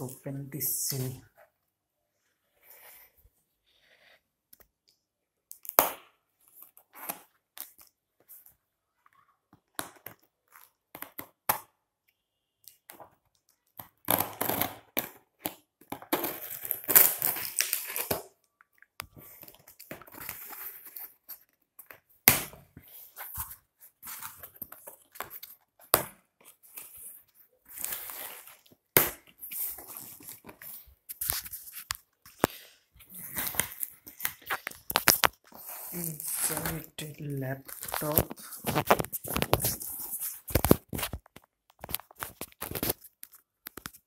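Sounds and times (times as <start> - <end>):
cardboard and plastic crinkling: 29.4 - 44.0.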